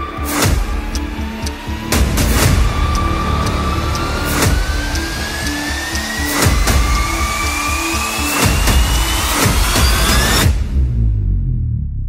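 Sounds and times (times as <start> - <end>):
rising synth tone: 0.0 - 11.4
held low notes: 0.0 - 12.0
drum hits: 0.2 - 10.9
heavy low rumble: 0.5 - 12.0.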